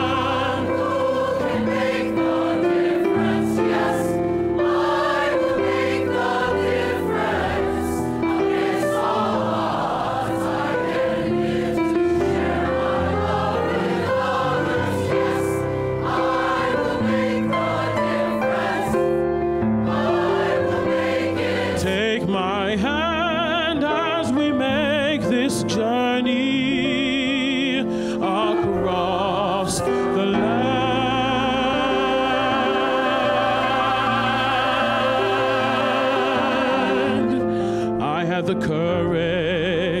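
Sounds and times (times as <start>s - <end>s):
mixed choir singing in harmony: 0.0s - 25.6s, 26.3s - 38.5s.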